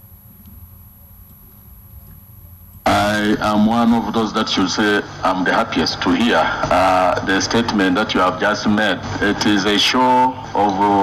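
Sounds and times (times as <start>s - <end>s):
faint hum: 0.0s - 11.0s
man speaking: 2.8s - 11.0s.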